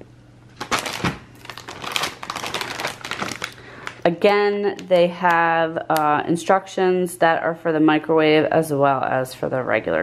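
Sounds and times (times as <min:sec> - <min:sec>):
plastic bag crinkling: 0:00.5 - 0:04.2.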